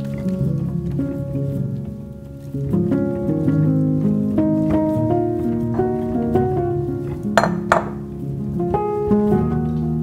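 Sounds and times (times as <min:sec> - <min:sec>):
background music: 0:00.0 - 0:10.0
glass bowl clinking: 0:07.4 - 0:08.1.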